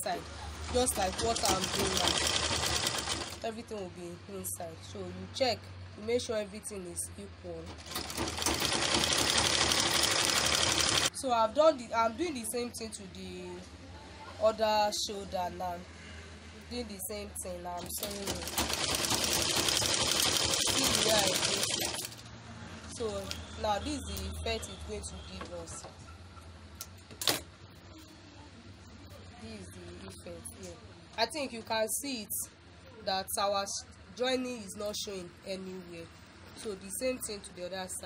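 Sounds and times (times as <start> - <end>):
sewing machine running: 0.6 - 3.4, 7.7 - 11.1, 17.8 - 22.2.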